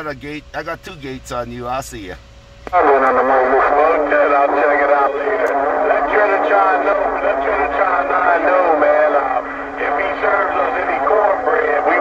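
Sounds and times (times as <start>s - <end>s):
steady low tone: 2.2s - 12.0s
voice over radio speaker: 2.7s - 12.0s.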